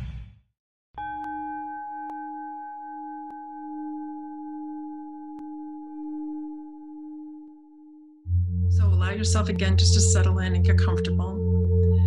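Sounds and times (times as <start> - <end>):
singing bowl ringing: 1.3 - 8.8.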